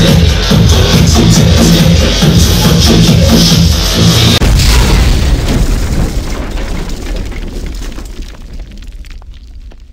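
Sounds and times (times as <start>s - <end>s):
electronic dance music: 0.0s - 4.4s.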